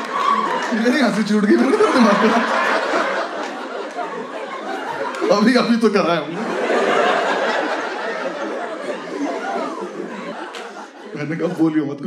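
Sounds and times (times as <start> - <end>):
audience laughing and chattering: 0.0 - 12.0.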